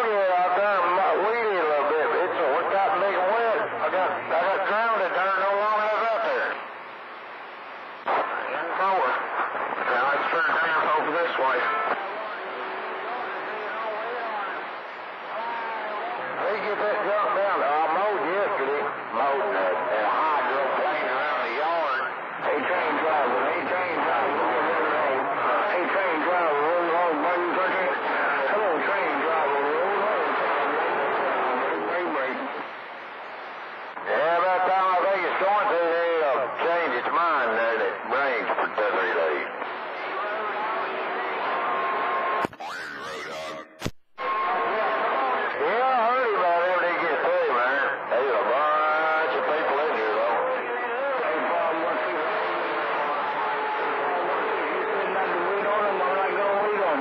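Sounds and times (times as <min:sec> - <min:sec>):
radio static burst: 0:05.8 - 0:13.7, 0:38.0 - 0:44.0
radio voices through speaker: 0:08.0 - 0:41.5, 0:42.4 - 0:44.4.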